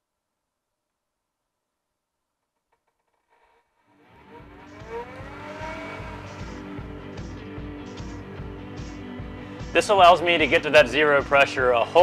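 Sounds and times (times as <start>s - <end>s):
fan whine rising: 3.9s - 7.8s
background music with beat: 4.2s - 12.0s.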